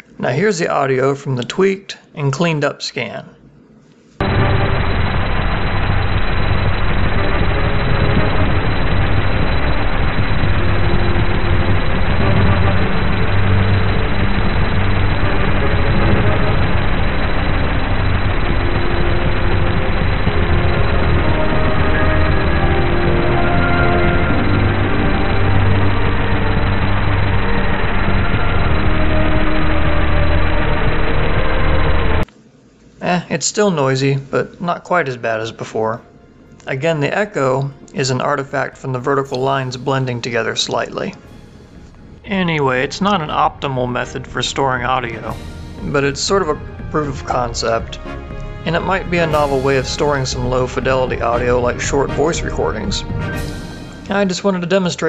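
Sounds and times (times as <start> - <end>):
heavy steady noise: 3.5 - 55.0
dull muffled music: 4.2 - 32.3, 35.5 - 54.7.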